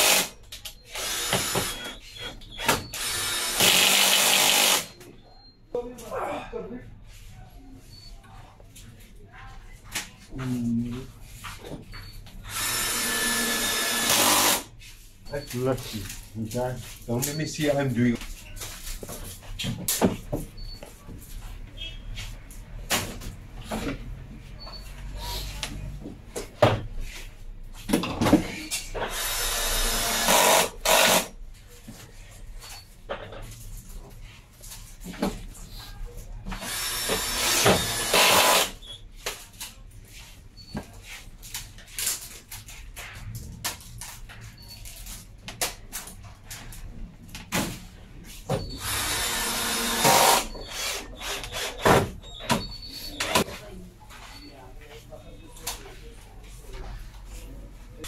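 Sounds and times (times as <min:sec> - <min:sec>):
power tool running: 0:02.9 - 0:04.9, 0:12.5 - 0:14.7, 0:29.1 - 0:31.3, 0:36.6 - 0:38.8, 0:48.8 - 0:51.8.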